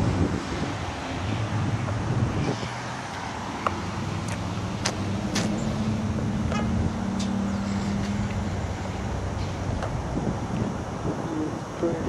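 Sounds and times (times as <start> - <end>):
car park noise: 0.0 - 12.0.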